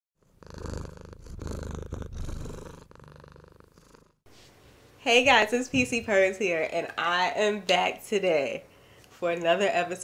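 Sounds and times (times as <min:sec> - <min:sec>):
cat purring: 0:00.2 - 0:04.2.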